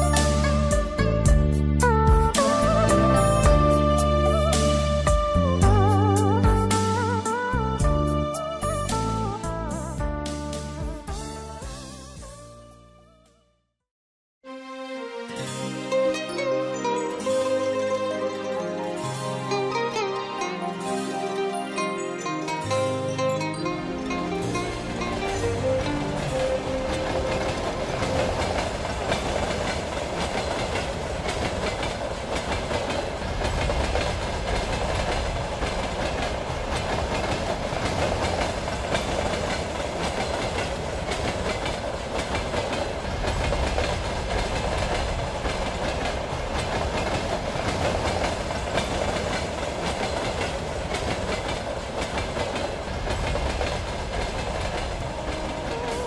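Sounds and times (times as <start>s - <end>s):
train rumbling along track: 0.0s - 12.4s, 22.5s - 56.0s.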